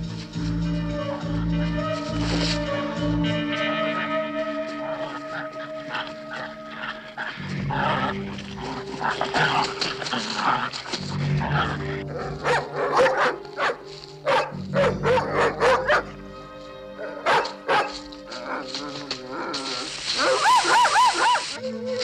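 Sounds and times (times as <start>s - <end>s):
background music: 0.0s - 22.0s
dog barking: 12.3s - 16.2s, 17.0s - 18.0s, 20.2s - 21.6s.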